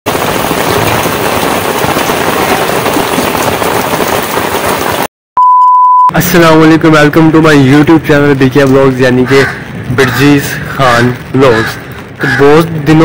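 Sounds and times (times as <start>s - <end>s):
heavy rain on pavement: 0.0s - 5.1s, 6.4s - 13.0s
test-tone beep: 5.4s - 6.2s.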